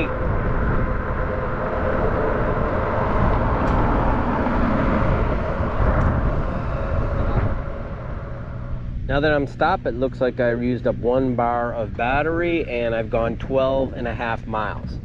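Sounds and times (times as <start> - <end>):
wind rushing on microphone: 0.0 - 15.0.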